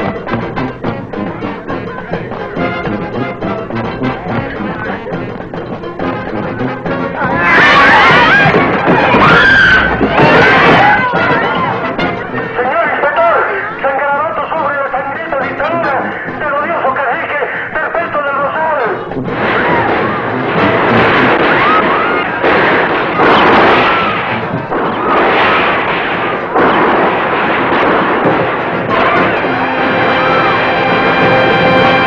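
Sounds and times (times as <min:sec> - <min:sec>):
dense loud noise surges: 0:18.9 - 0:32.0
held orchestral chord: 0:29.3 - 0:32.0.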